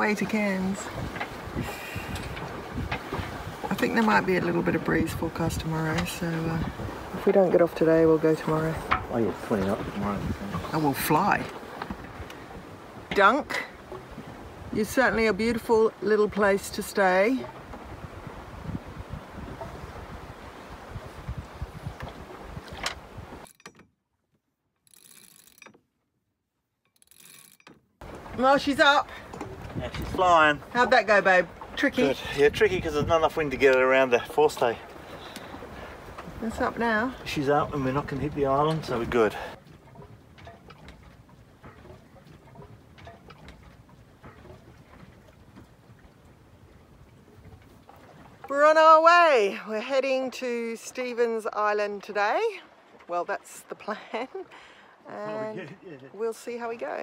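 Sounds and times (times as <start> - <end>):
wind buffeting microphone: 0.0 - 23.5, 28.0 - 49.5
water lapping against hull: 0.0 - 23.8, 27.0 - 57.0
soft splashes and ticks: 0.0 - 25.9, 26.8 - 48.9, 50.0 - 55.0
winch clicking and whirring: 22.7 - 26.1, 26.8 - 30.6, 39.6 - 48.5.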